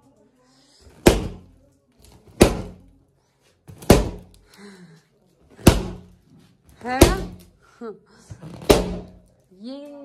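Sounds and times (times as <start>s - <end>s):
balloons bursting with loud bangs: 1.0s - 1.5s, 2.3s - 2.8s, 3.7s - 4.3s, 5.6s - 6.2s, 6.9s - 7.5s, 8.4s - 9.2s.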